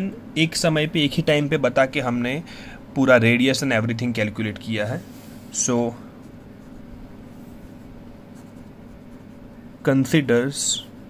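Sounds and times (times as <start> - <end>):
low steady hum: 0.0 - 11.0
pen scratching on paper: 6.2 - 9.6.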